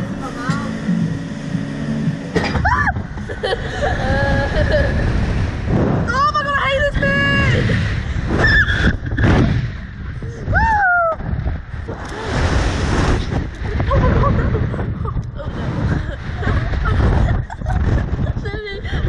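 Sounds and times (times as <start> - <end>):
wind rushing over microphone: 0.0 - 19.0
girls shrieking and laughing: 2.5 - 5.1.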